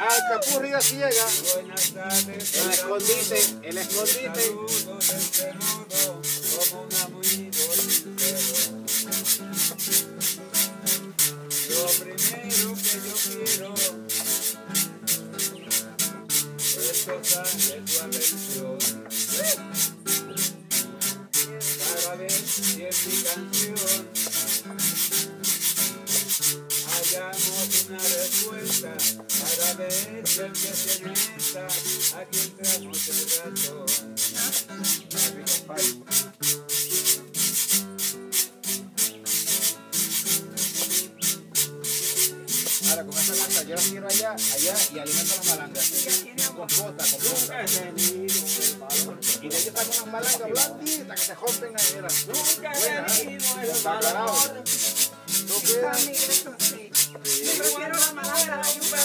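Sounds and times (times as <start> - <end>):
strummed acoustic guitars: 0.0 - 59.0
bananas scraping on grater: 47.0 - 59.0.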